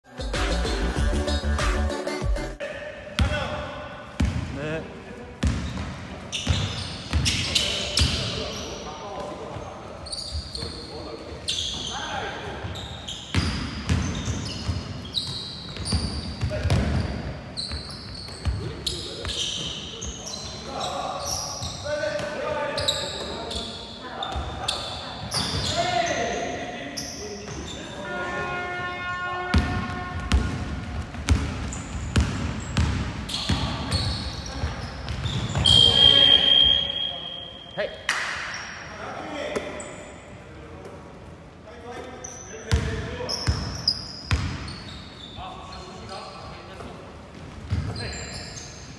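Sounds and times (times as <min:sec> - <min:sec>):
basketball bouncing on hardwood floor: 0:29.6 - 0:33.8.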